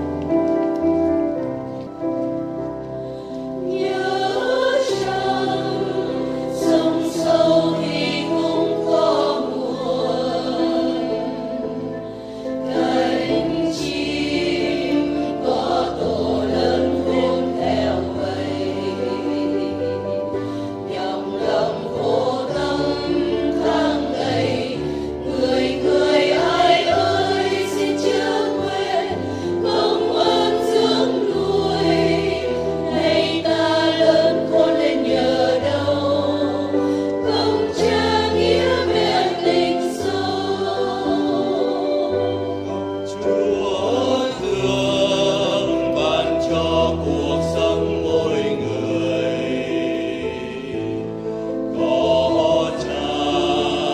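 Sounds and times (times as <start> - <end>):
choir singing a hymn: 0.0 - 53.9.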